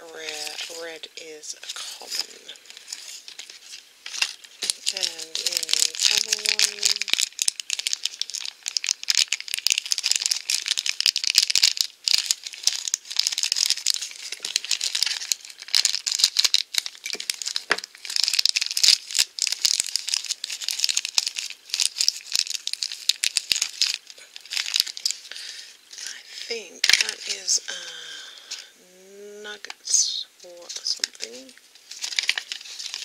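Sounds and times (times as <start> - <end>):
plastic bag crinkling: 0.0 - 28.7, 30.5 - 33.0.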